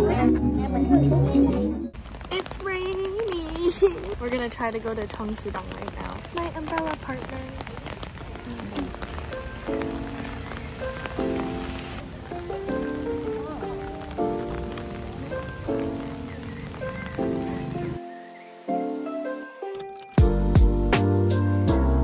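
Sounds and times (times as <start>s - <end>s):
rain on wet pavement: 1.9s - 18.1s
soft background music: 8.2s - 22.0s.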